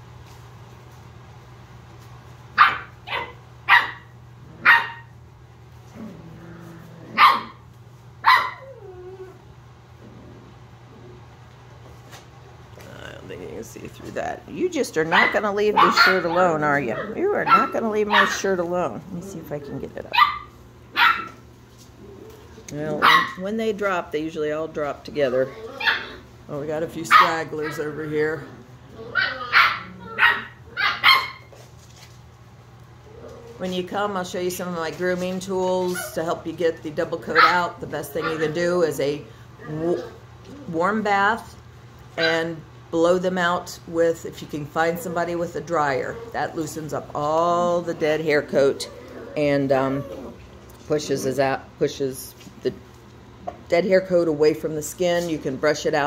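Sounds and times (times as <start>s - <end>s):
puppy barking: 2.6s - 5.1s, 7.1s - 7.6s, 8.2s - 8.8s, 15.1s - 18.5s, 20.1s - 21.4s, 23.0s - 23.4s, 25.8s - 26.2s, 27.1s - 27.9s, 29.0s - 31.5s, 37.3s - 37.6s, 38.2s - 38.6s
puppy whining: 8.2s - 9.5s, 25.2s - 26.3s, 27.2s - 31.5s, 39.6s - 40.8s, 44.8s - 46.8s, 47.5s - 50.6s.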